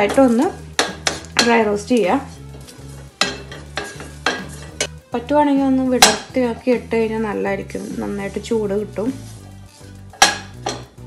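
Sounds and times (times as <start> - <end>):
wooden spatula scraping frying pan: 0.0 - 4.9, 6.0 - 11.0.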